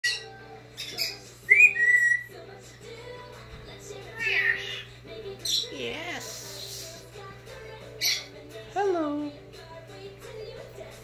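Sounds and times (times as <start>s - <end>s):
parrot whistling: 0.0s - 2.4s.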